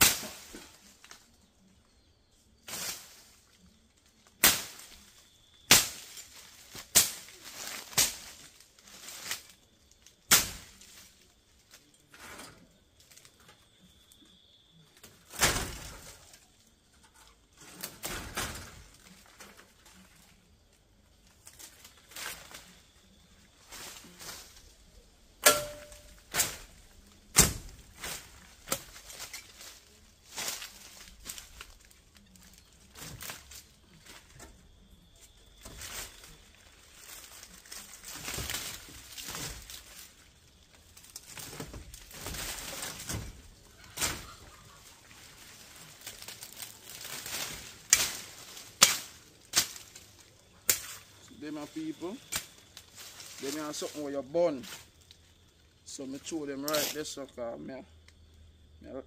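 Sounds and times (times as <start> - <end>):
machete chopping through weeds: 0.0 - 0.8, 4.4 - 5.0, 5.7 - 9.5, 10.3 - 11.1, 25.4 - 29.7, 46.1 - 51.0.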